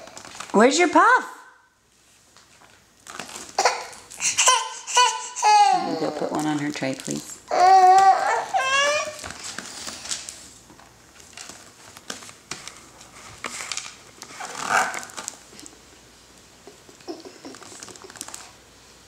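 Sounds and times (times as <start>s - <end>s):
baby whimpering: 3.6s - 6.4s, 7.5s - 9.2s.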